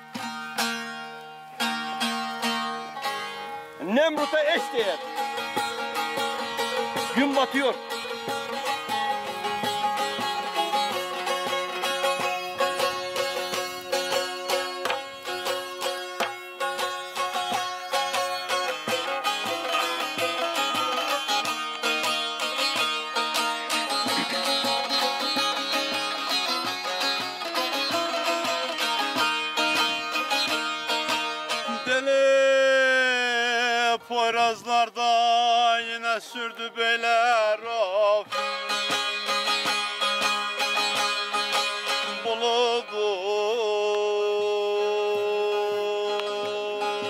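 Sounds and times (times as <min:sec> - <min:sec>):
plucked and strummed saz: 0:00.0 - 0:47.0
man singing a wavering note: 0:42.0 - 0:47.0.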